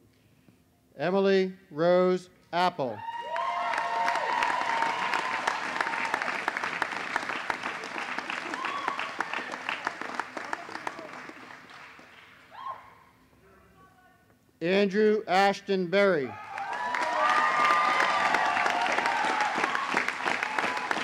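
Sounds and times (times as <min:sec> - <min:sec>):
crowd cheering: 0:03.0 - 0:12.9, 0:16.3 - 0:21.0
crowd applauding: 0:03.1 - 0:12.6, 0:16.4 - 0:21.0.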